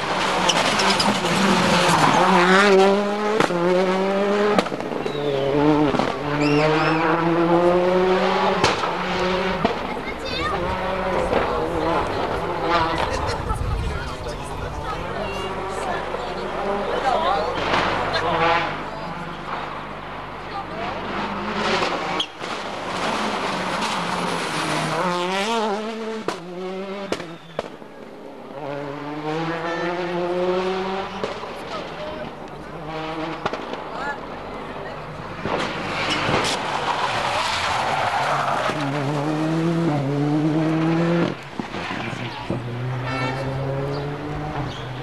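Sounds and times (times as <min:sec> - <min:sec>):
rally car engine revving: 0:00.0 - 0:45.0.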